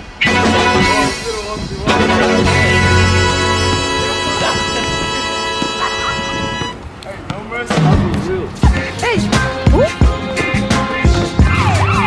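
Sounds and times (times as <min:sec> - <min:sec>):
background music held chord: 0:01.9 - 0:06.1.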